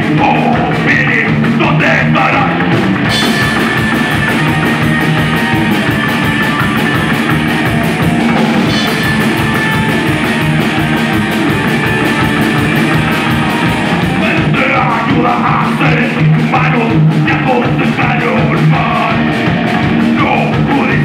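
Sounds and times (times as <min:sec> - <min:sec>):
rock band playing: 0:00.0 - 0:21.0
fast cymbal beat: 0:03.1 - 0:21.0.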